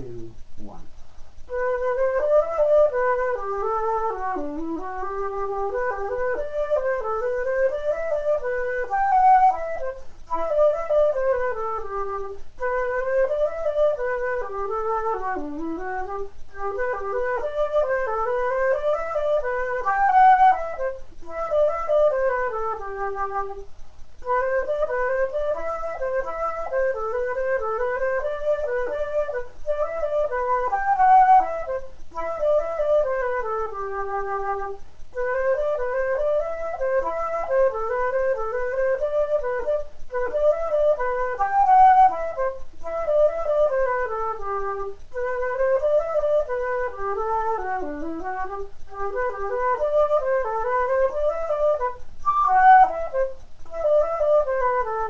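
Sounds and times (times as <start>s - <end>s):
solo flute playing a lively tune: 0.0s - 55.0s
flute player breathing: 10.0s - 10.3s, 34.8s - 35.2s.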